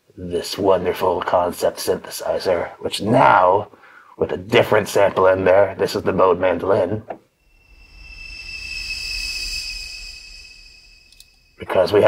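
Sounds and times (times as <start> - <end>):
high thin synthesizer note: 7.4 - 12.0
low rumble: 7.4 - 12.0.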